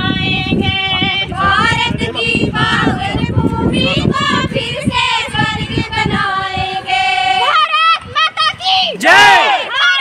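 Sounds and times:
women singing together: 0.0s - 8.9s.

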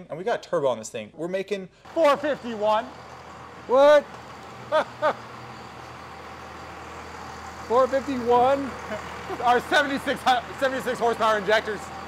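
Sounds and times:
low hum of machinery: 1.9s - 12.0s
person laughing: 4.7s - 5.3s, 8.8s - 9.5s.

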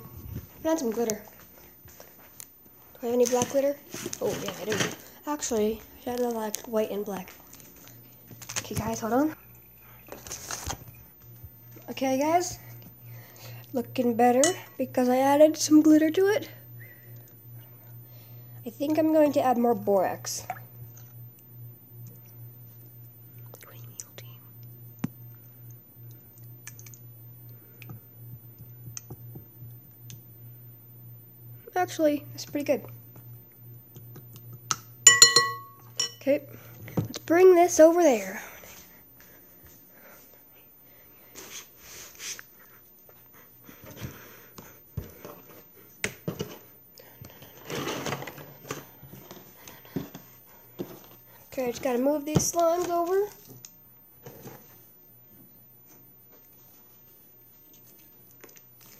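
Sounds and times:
steady low hum: 0.0s - 58.9s.

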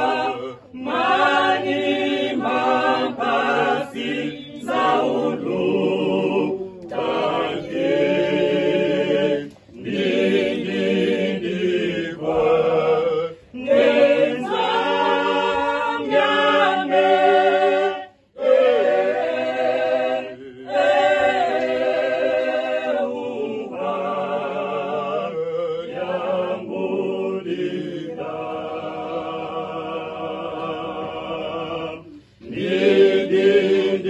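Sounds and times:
choir singing unaccompanied: 0.0s - 34.0s.

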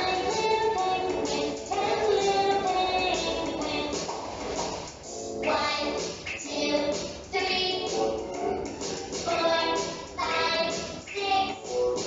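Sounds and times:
children's song with sung vocals: 0.0s - 12.0s.

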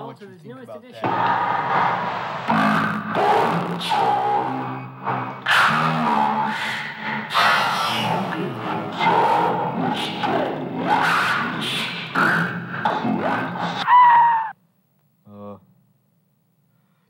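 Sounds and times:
overlapping loud voices: 1.0s - 14.5s
held shout: 13.8s - 14.6s.

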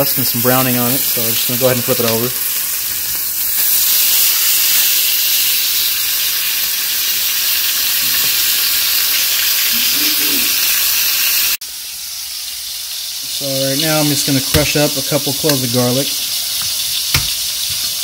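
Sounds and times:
steak sizzling in a skillet: 0.0s - 18.0s.

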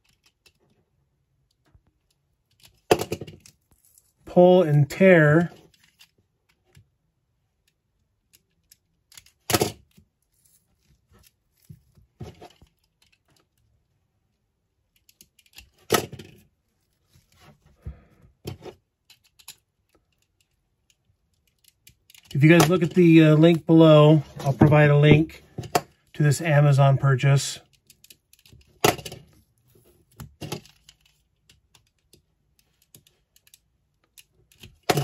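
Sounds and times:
small clicks: 12.5s - 13.7s, 14.9s - 16.0s, 19.0s - 22.7s.

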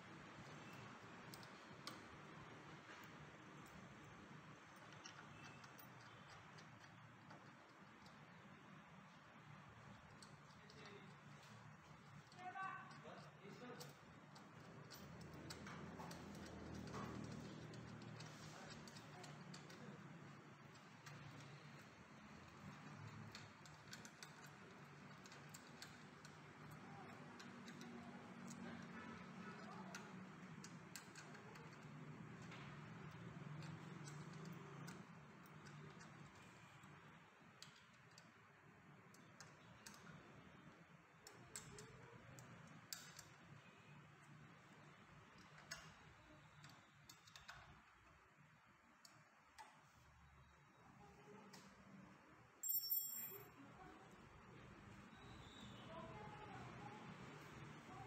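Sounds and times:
small metal piece clinking: 52.6s - 53.5s.

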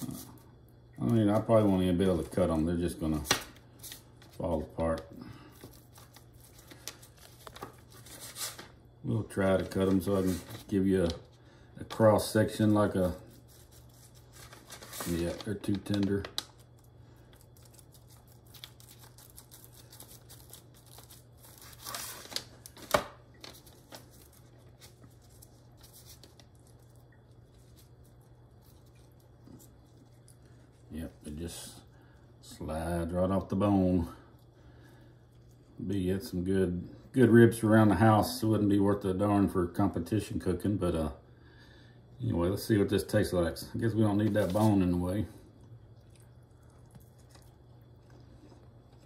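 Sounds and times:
low steady hum: 0.0s - 49.0s
paper rustling: 3.2s - 8.8s, 9.4s - 11.3s, 12.9s - 30.8s, 44.2s - 44.9s.

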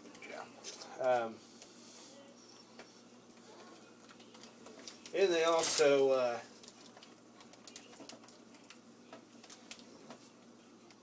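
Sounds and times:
plastic wrapping clicks and rustles: 4.0s - 10.2s.

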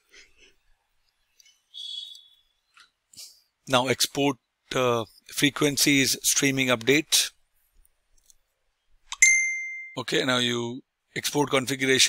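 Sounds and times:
high-pitched ding: 9.2s - 10.0s.

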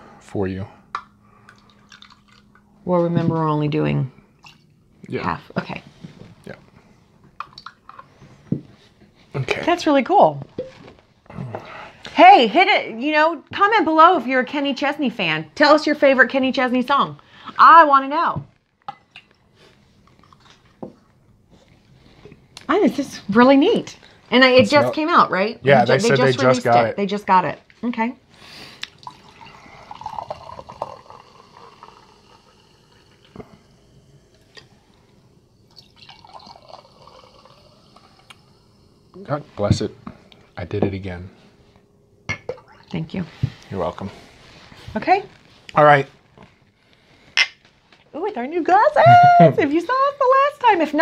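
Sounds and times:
glass bottle handling: 10.6s - 10.9s.

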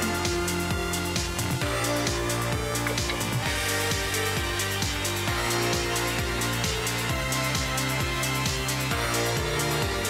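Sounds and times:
electronic music with steady beat: 0.0s - 10.0s.

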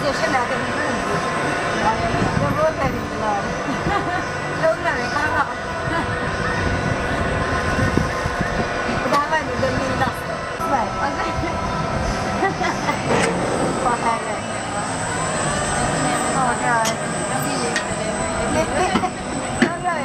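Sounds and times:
people's voices: 0.0s - 20.0s
machine hum with held tones: 10.3s - 20.0s.

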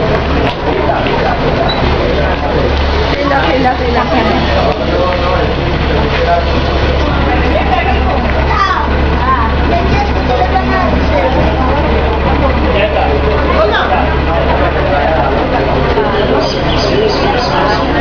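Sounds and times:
bus engine idling: 0.0s - 18.0s
passengers chattering: 0.0s - 18.0s.

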